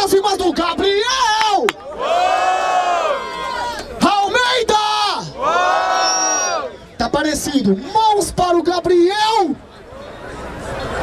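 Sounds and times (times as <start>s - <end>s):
crowd cheering and yelling: 1.1s - 6.9s.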